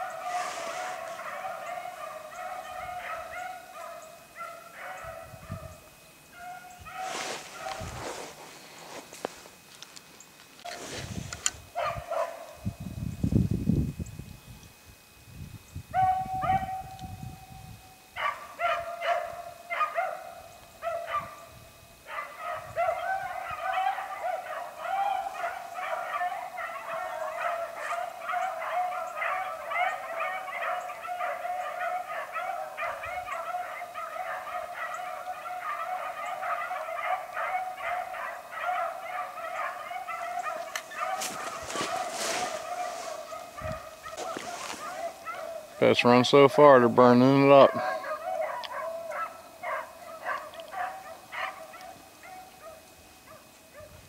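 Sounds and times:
rustling in brush: 0:00.0 - 0:02.0, 0:06.8 - 0:11.8, 0:40.3 - 0:45.8
dogs baying: 0:00.0 - 0:09.6, 0:11.7 - 0:12.6, 0:18.1 - 0:54.0.

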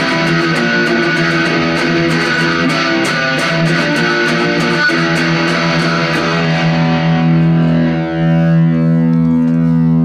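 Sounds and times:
electric guitar chord ringing: 0:00.0 - 0:10.0.

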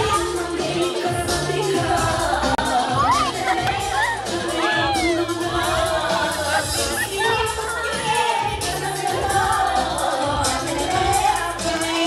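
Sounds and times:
dance music: 0:00.0 - 0:12.0.

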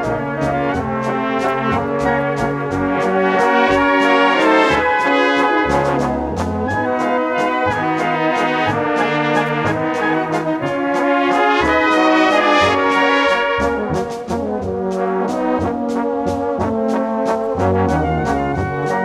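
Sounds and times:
brass band playing: 0:00.0 - 0:19.0
drums beating: 0:00.0 - 0:19.0
tuba bass notes: 0:00.0 - 0:19.0.

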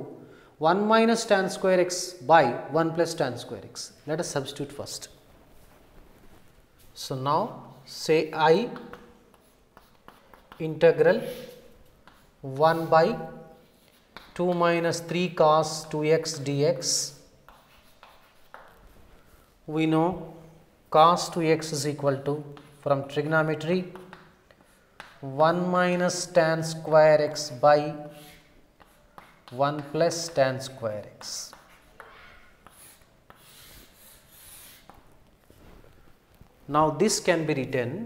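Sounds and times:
chalk scraping on chalkboard: 0:07.7 - 0:19.4, 0:26.0 - 0:35.8
chalk tapping on chalkboard: 0:08.5 - 0:15.1, 0:15.7 - 0:19.0, 0:22.4 - 0:22.8, 0:23.5 - 0:25.4, 0:26.0 - 0:35.1.

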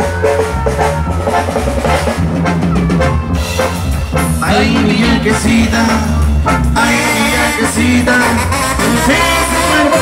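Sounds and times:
bass drum: 0:00.0 - 0:10.0
bass line: 0:00.0 - 0:10.0
live band playing: 0:00.0 - 0:10.0.

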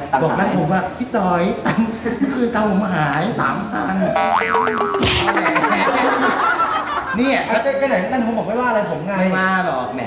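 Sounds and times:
tone sliding downward: 0:04.2 - 0:05.4
wobbling boing: 0:04.2 - 0:05.6.

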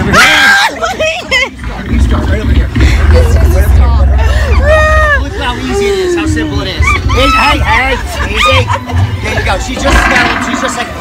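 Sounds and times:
women laughing and exclaiming: 0:00.1 - 0:01.6, 0:04.2 - 0:09.4
heavy low rumble: 0:01.4 - 0:11.0.

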